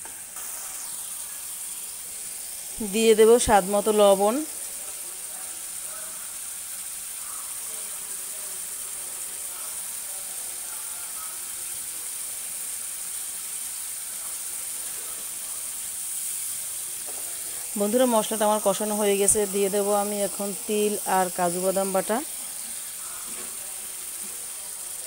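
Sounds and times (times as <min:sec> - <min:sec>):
paste sizzling in oil: 0:00.0 - 0:25.0.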